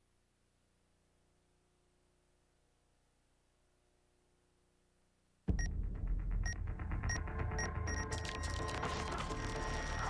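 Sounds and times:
low rumbling synthesized music: 5.5s - 10.0s
digital clock beeps: 6.5s - 8.5s.

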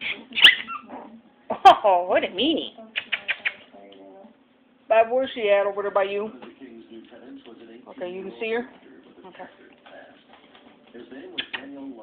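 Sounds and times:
puppy yelping: 0.0s - 1.1s.

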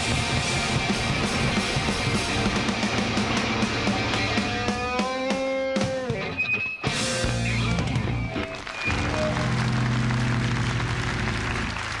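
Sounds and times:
rock band final chord ringing: 0.0s - 6.3s.

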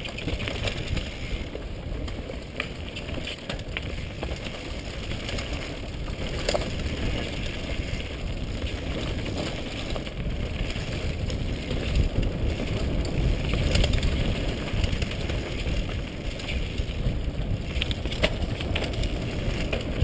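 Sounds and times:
bike rattles and clicks: 0.0s - 20.0s
tyres on gravel trail: 0.0s - 20.0s
wind rumbling on microphone: 0.0s - 20.0s.

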